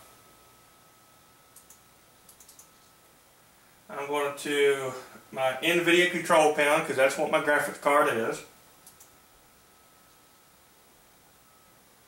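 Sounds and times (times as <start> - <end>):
faint computer mouse clicks: 1.6 - 2.9, 8.8 - 9.1.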